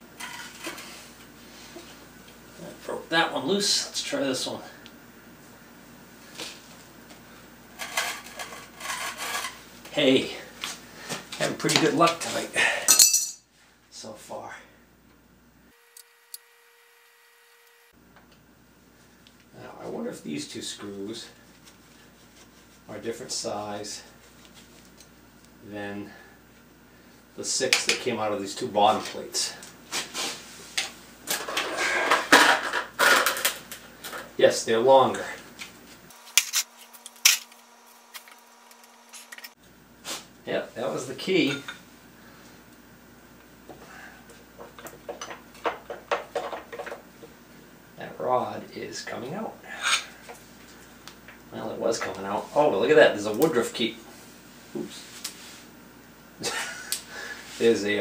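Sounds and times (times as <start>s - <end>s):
metallic scrapes and grinds: 7.8s - 9.6s
metal screws scraping and clattering: 36.3s - 37.6s.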